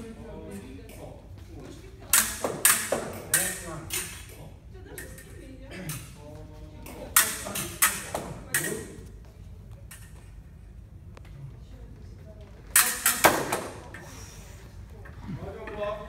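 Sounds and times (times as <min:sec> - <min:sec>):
fencing blades clicking: 0:02.1 - 0:06.2, 0:06.9 - 0:09.0, 0:09.8 - 0:10.4, 0:12.7 - 0:14.1.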